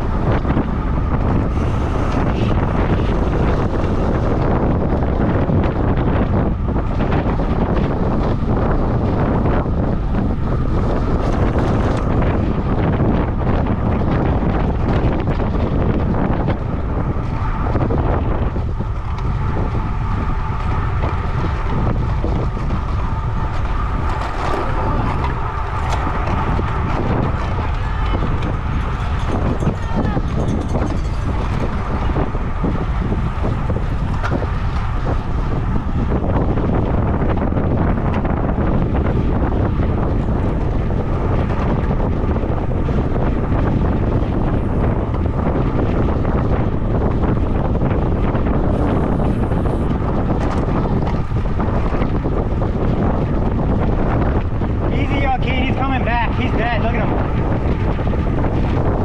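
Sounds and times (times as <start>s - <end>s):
wind noise on microphone: 0.0s - 59.0s.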